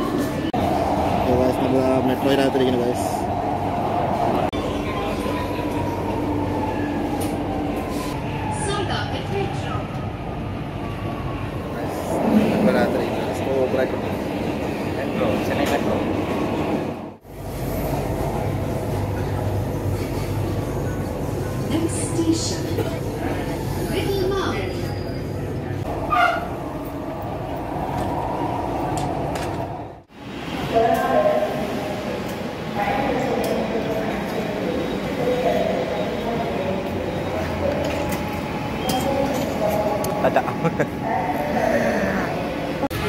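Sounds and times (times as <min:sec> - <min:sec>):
metro train rumble: 0:00.0 - 0:43.0.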